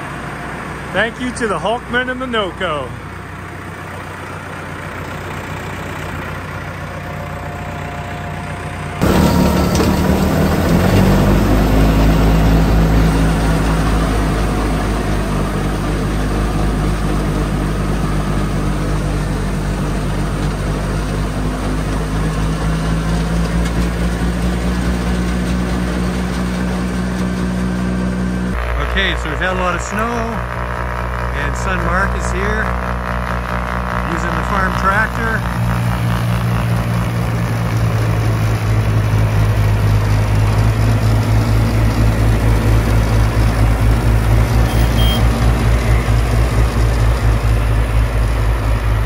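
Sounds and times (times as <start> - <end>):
diesel tractor idling: 0.0 - 49.0
tractor engine under load: 0.0 - 49.0
snowblower throwing snow: 9.0 - 15.2, 28.5 - 47.6.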